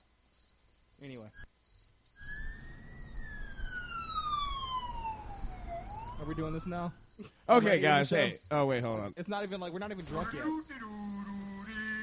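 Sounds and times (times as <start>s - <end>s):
siren wailing: 2.2s - 7.0s.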